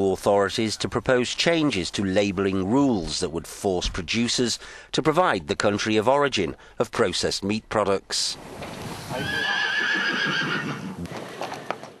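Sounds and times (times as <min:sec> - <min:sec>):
horse whinnying: 0:09.1 - 0:11.7.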